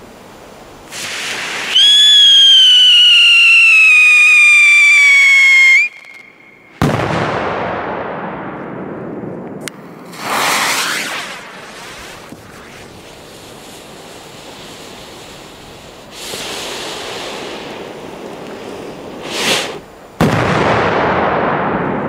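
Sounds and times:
fuse hiss: 0.0 - 6.8, 11.4 - 20.2
firecracker whistle: 0.9 - 6.9, 19.2 - 19.8.

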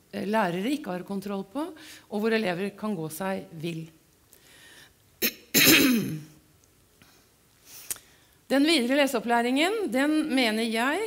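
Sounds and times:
woman coughing: 5.2 - 6.4.

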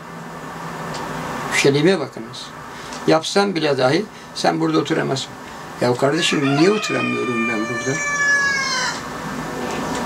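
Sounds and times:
low background noise: 0.0 - 10.0
rooster crowing: 6.0 - 9.3.

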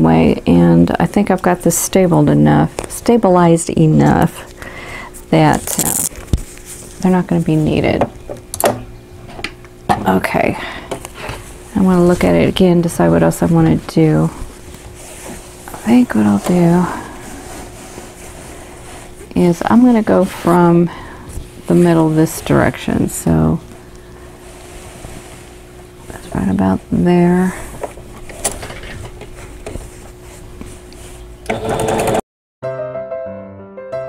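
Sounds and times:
faint constant hum: 0.0 - 32.0.

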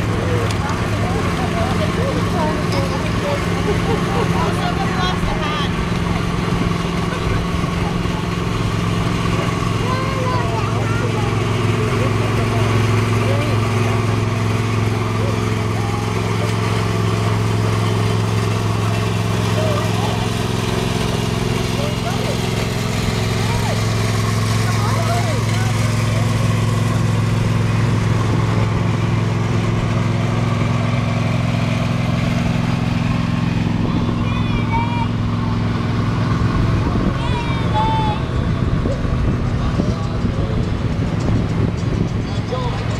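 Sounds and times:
vehicle engines droning: 0.0 - 42.9.

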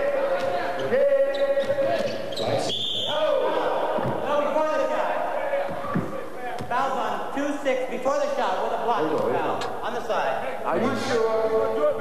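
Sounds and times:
short high whistle: 2.7 - 3.2.

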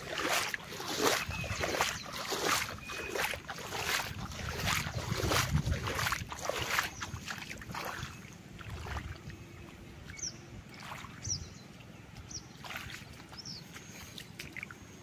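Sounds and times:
legs wading through water: 0.0 - 15.0.

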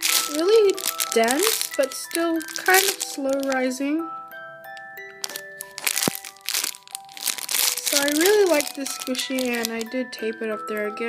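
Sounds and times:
plastic bag crinkling: 0.0 - 3.8, 4.7 - 10.0
music of held notes: 0.0 - 11.0.

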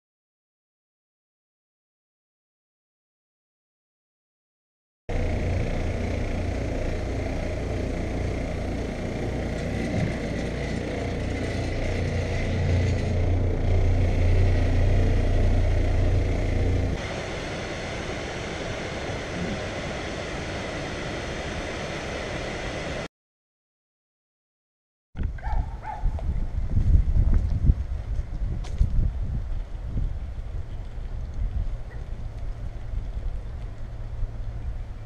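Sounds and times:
carpet machine motor humming: 5.1 - 21.4
waterfalls rushing: 17.0 - 23.1.

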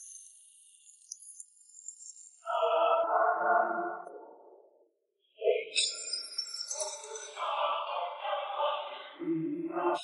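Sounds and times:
synthesized ringing tones: 5.7 - 7.4.

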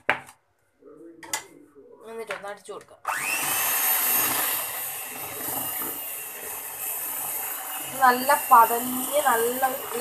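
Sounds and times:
electric hand mixer whirring: 3.0 - 10.0.

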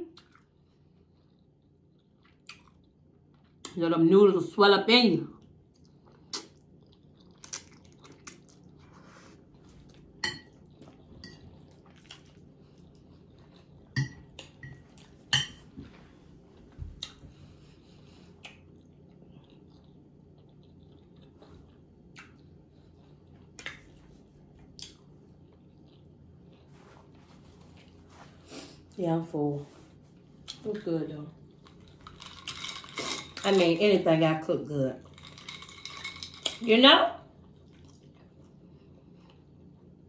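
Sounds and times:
chewing spaghetti: 0.0 - 3.8, 5.3 - 15.3, 16.7 - 28.0, 30.1 - 33.8, 34.9 - 40.0.

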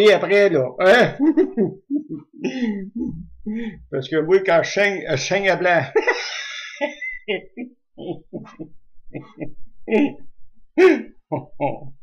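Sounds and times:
man clearing his throat: 2.4 - 3.2, 10.8 - 11.8.

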